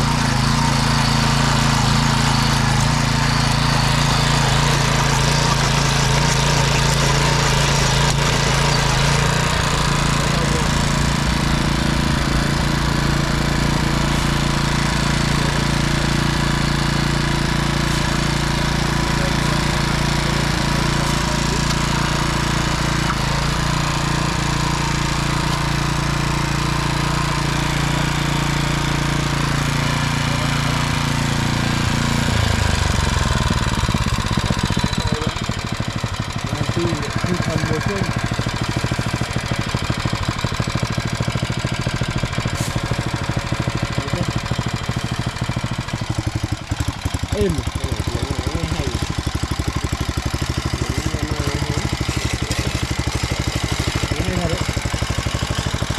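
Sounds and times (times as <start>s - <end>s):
tiller engine running: 0.0s - 55.9s
tines churning dry soil: 0.0s - 55.9s.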